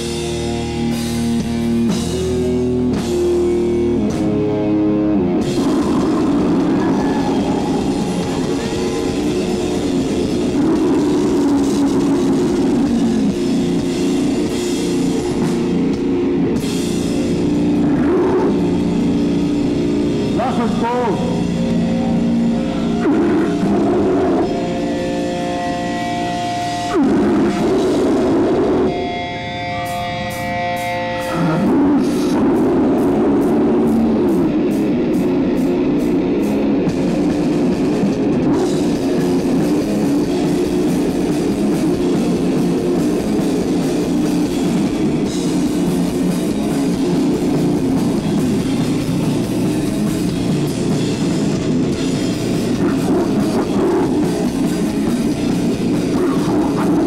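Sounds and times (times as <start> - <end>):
metal band playing live: 0.0 - 57.0.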